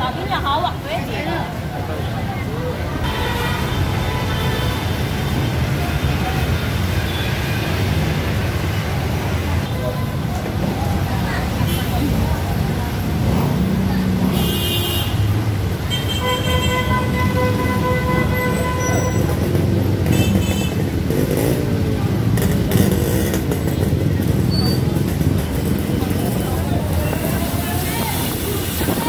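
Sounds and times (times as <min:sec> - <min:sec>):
crowd voices: 0:00.0 - 0:15.9, 0:16.8 - 0:29.0
traffic: 0:00.0 - 0:29.0.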